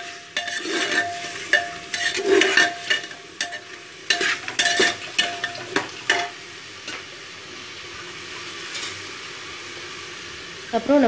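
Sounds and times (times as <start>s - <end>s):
ladle scraping and knocking in pot: 0.0s - 7.0s
meat and onions sizzling: 0.0s - 11.0s.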